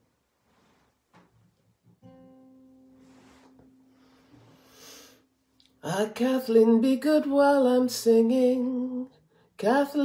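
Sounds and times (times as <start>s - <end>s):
guitar note ringing: 2.0s - 5.0s.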